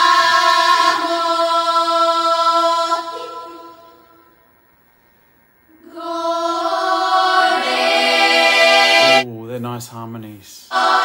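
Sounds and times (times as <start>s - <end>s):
women's choir singing in harmony: 0.0s - 4.4s, 5.8s - 9.2s, 10.7s - 11.0s.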